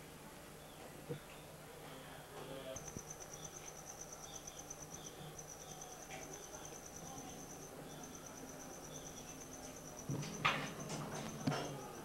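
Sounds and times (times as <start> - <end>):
cricket trilling: 2.6 - 12.0.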